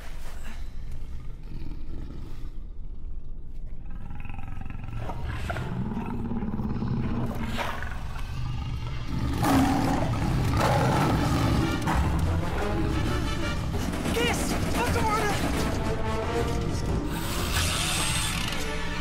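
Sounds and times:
lions growling and roaring: 0.8s - 19.0s.

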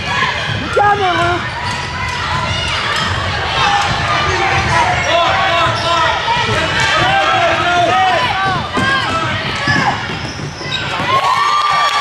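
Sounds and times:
basketball bouncing: 0.0s - 11.9s
voices of players and spectators: 0.0s - 12.0s
sneaker squeaks on gym floor: 9.6s - 11.3s.

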